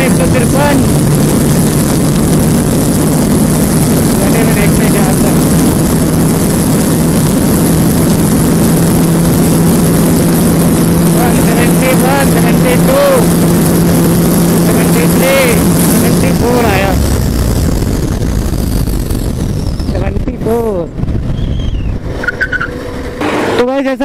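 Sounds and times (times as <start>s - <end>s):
motorcycle engine at full throttle: 0.0s - 24.0s
wind rush: 0.0s - 24.0s.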